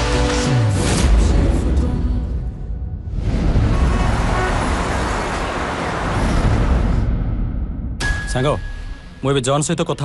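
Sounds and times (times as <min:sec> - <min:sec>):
road traffic rumble: 0:03.6 - 0:07.1.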